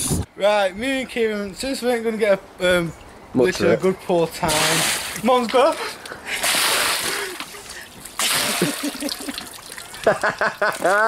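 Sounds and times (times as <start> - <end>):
water splashing onto person: 4.5 - 11.0.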